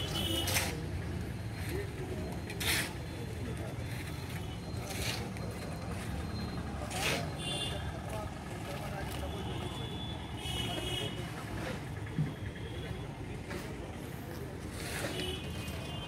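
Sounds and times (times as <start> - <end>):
faint voices: 0.0 - 16.0.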